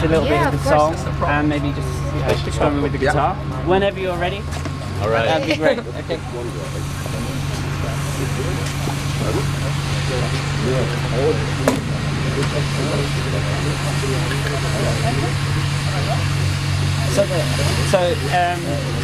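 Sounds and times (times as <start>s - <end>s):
indistinct talking: 0.0s - 19.0s
low machine hum: 0.0s - 19.0s.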